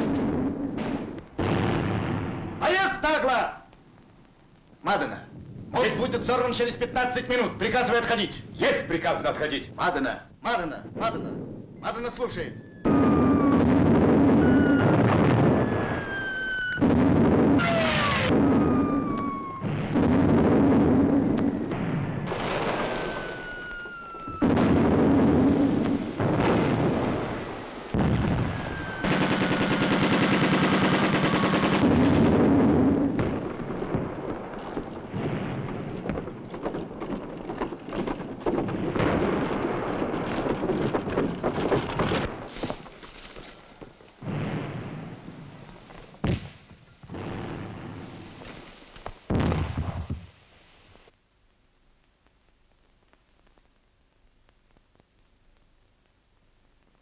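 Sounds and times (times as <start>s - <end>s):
loud explosions: 0.0s - 3.3s, 10.8s - 42.5s, 44.2s - 45.6s, 46.2s - 48.3s, 49.3s - 50.2s
shells whistling down: 11.8s - 19.8s, 21.1s - 24.9s, 28.0s - 32.0s
scattered gunshots: 13.0s - 27.4s, 28.0s - 35.8s
rapid machine-gun fire: 28.0s - 32.8s.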